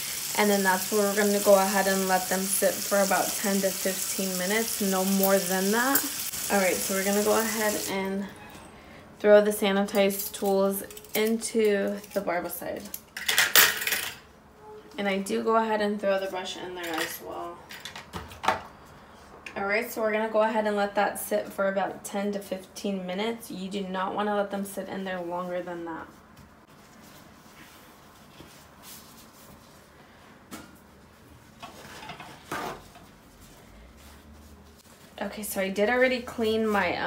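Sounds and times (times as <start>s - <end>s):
paper towel wiping countertop: 0.4s - 7.9s.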